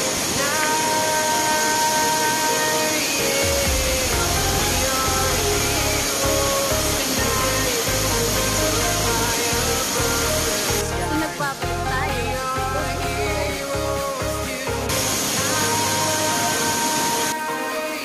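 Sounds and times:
pop music: 0.0s - 18.0s
waterfall rushing: 0.0s - 18.0s.

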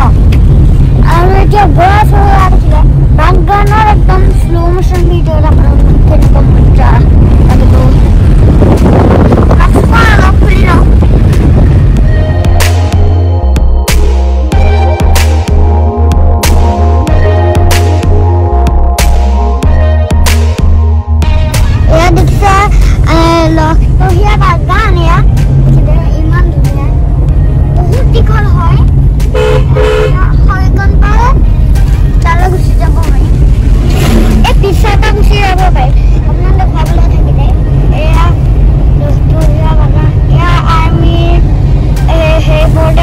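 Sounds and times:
car cabin road and engine rumble: 0.0s - 43.0s
people talking: 1.0s - 8.1s, 9.6s - 11.0s, 21.9s - 27.0s, 27.8s - 28.9s, 30.1s - 31.4s, 32.2s - 33.3s, 34.1s - 38.4s, 39.0s - 41.4s, 42.0s - 43.0s
car horn toots: 29.3s - 30.4s.

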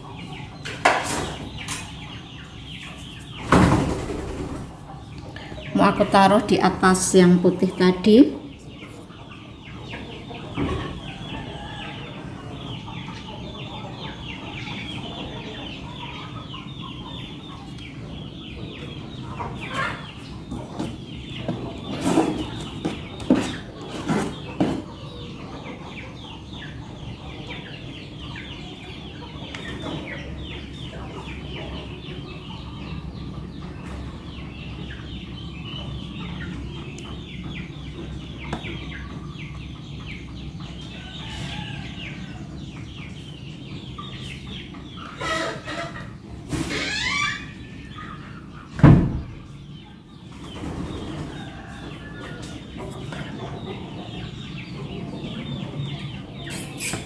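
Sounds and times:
chickens clucking and chirping: 0.0s - 57.0s.

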